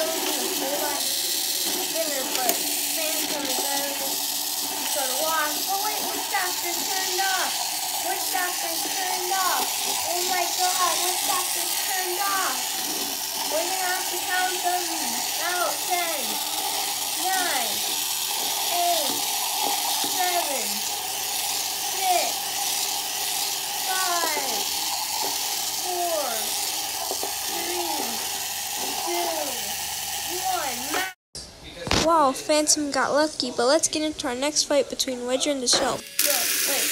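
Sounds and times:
small electric motors whining: 0.0 - 31.2, 35.8 - 36.9.

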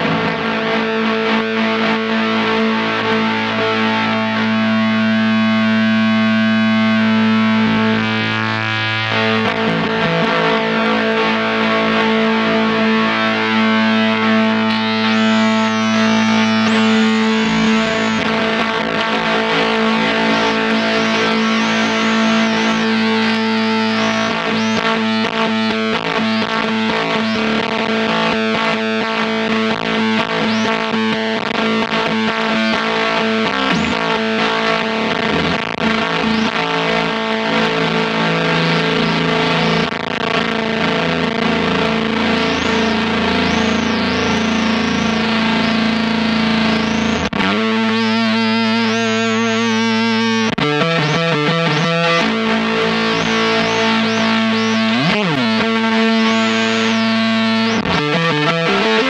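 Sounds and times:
fuzz electric guitar: 0.0 - 59.0.

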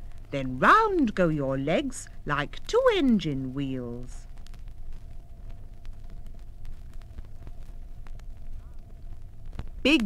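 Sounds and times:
faint steady hum: 0.0 - 10.0
low rumble: 0.0 - 10.0
vinyl clicks and crackle: 0.0 - 10.0.

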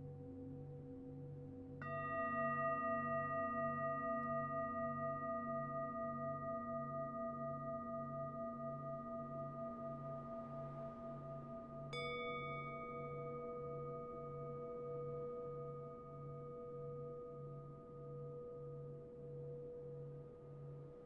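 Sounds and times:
singing bowl struck: 1.8 - 10.0
singing bowls ringing: 1.8 - 21.0.

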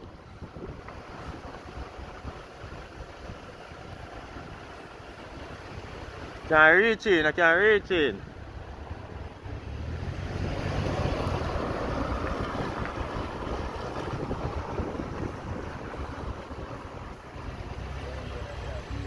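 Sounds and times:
wind rushing over microphone: 0.0 - 6.6, 8.2 - 18.9
low engine hum: 0.0 - 19.0.

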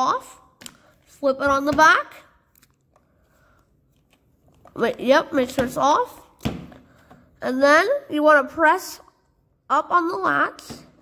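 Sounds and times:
person speaking: 0.0 - 2.8, 4.4 - 6.5, 7.4 - 11.0
plastic camera handling: 3.9 - 5.0.

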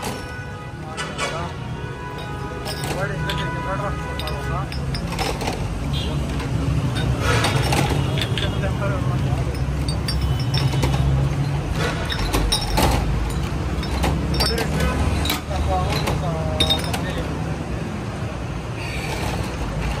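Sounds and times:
low traffic rumble: 0.0 - 20.0
glass bottles clinking: 2.1 - 17.5.

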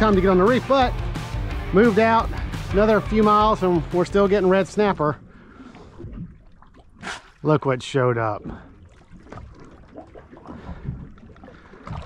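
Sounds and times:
water moving around boat hull: 2.8 - 12.0
faint knocks and splashes: 5.6 - 7.0, 8.3 - 12.0.

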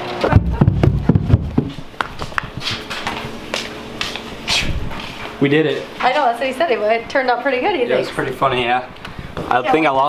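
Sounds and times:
footsteps on carpeted stairs: 0.3 - 6.3.

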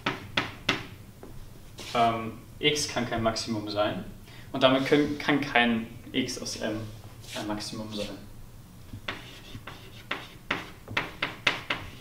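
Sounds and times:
man speaking: 1.9 - 8.3
chalk writing on blackboard: 9.1 - 12.0.

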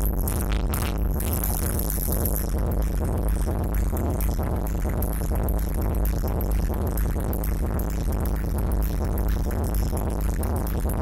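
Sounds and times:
loud techno music: 0.0 - 11.0.

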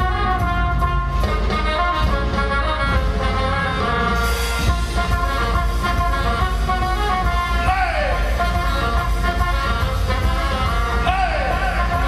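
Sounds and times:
drums: 0.0 - 12.0
live punk band playing: 0.0 - 12.0
saxophone holding long notes: 0.0 - 12.0.

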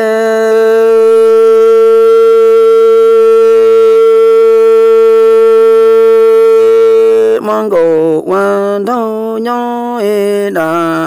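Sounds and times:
person singing long note: 0.0 - 11.0.

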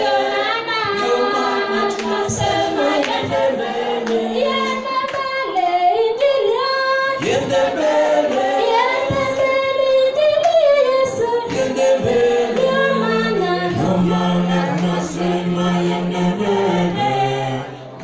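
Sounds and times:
choir singing: 0.0 - 18.0.

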